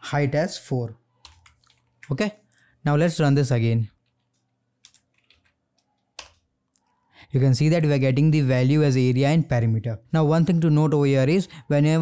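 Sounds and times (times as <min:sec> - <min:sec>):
faint keyboard keystrokes: 0:01.2 - 0:02.7, 0:04.0 - 0:07.0.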